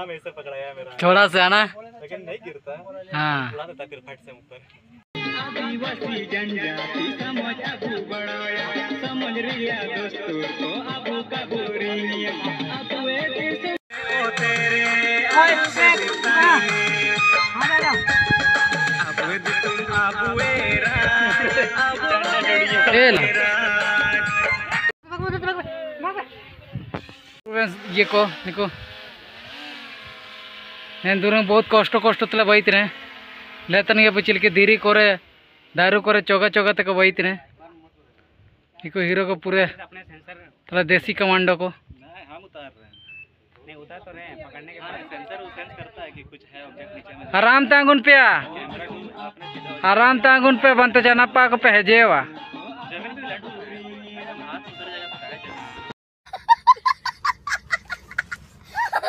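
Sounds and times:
song: 0:05.2 - 0:24.9
drone rotors buzzing: 0:26.9 - 0:35.8
child cackling laughter: 0:56.3 - 0:59.0.

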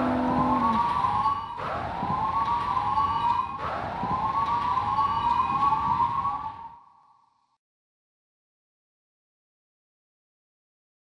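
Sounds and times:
police siren wailing with echoes: 0:00.0 - 0:07.0.

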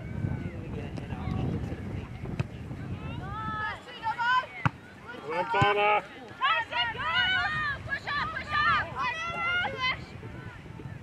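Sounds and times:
young voices shouting calls: 0:03.1 - 0:10.1.

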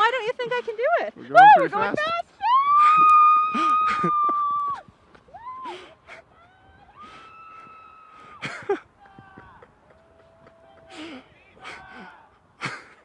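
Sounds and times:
woman screaming: 0:02.4 - 0:08.0.

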